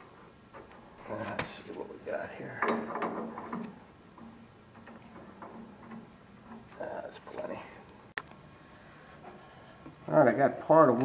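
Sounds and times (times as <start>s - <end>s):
metal handling: 0.5s - 8.4s.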